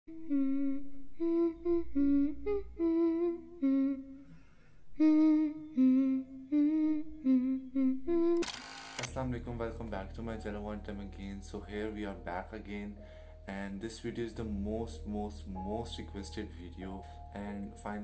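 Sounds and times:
person humming a melody: 0.1 - 4.4, 5.0 - 18.0
man speaking: 9.0 - 18.0.

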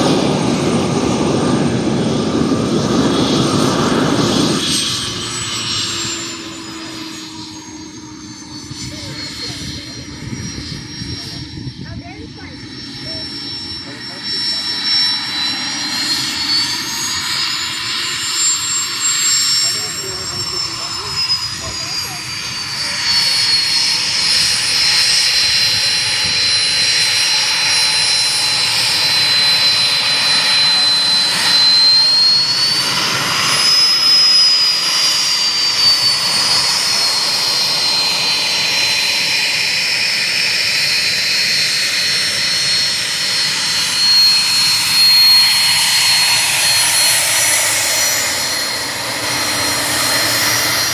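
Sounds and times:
jet engine rush: 0.0 - 50.9
jet engine whine: 0.0 - 50.9.

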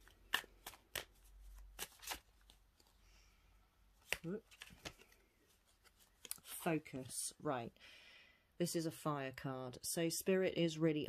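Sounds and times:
cards being shuffled: 0.0 - 3.0, 4.0 - 7.2.

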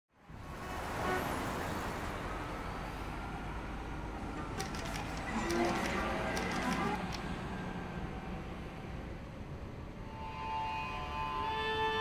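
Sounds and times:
street traffic noise: 0.1 - 12.0
bus engine rumble: 0.3 - 12.0.

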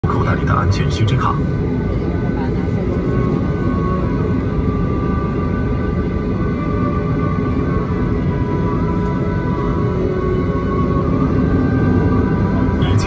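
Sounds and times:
jet engine whine: 0.0 - 13.0
low cabin rumble: 0.0 - 13.0
music playing: 0.0 - 13.0.

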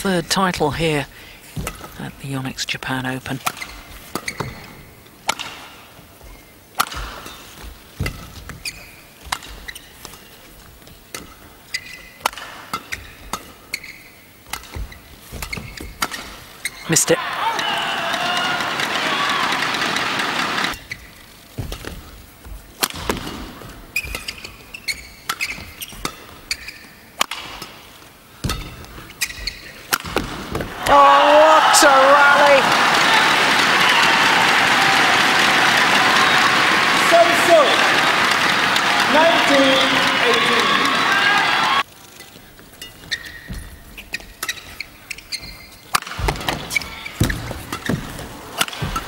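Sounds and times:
badminton racket hitting shuttlecock: 6.8 - 8.6, 22.7 - 30.7, 44.1 - 49.0
crowd cheering: 16.8 - 20.8, 30.6 - 41.8.

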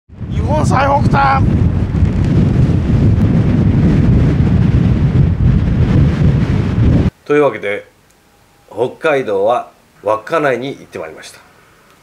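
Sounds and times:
wind buffeting microphone: 0.1 - 7.1.

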